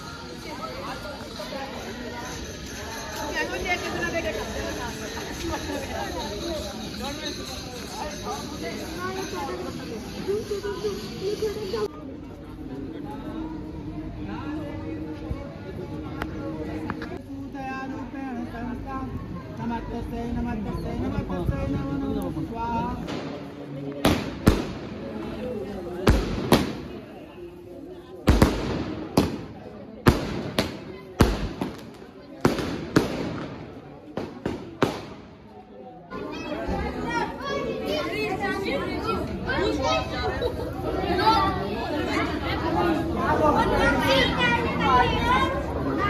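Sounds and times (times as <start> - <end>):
boys chattering: 0.0 - 46.0
faint voices: 0.0 - 46.0
firecrackers banging: 23.0 - 25.4, 26.0 - 27.2, 28.2 - 35.6.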